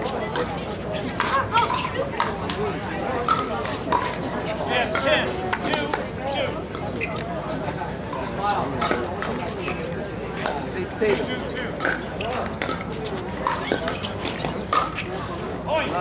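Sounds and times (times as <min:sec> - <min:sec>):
background chatter: 0:00.0 - 0:16.0.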